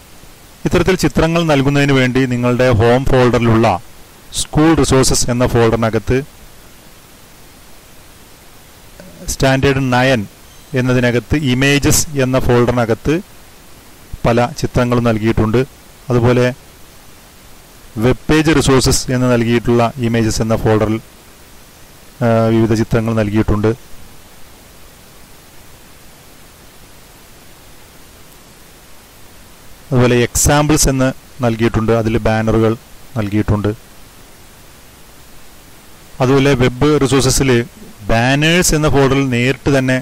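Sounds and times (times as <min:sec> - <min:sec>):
microphone hiss: 0:00.0 - 0:40.0.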